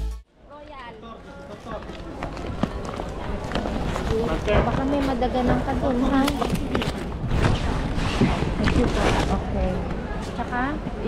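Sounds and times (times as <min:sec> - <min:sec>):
market voices and bustle: 0:00.3 - 0:11.0.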